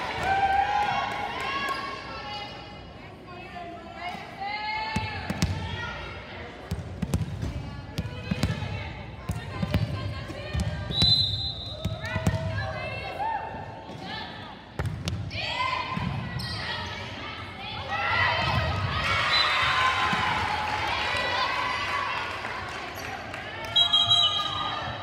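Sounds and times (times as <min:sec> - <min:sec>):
referee's whistle: 0:10.9 - 0:12.0, 0:23.7 - 0:24.9.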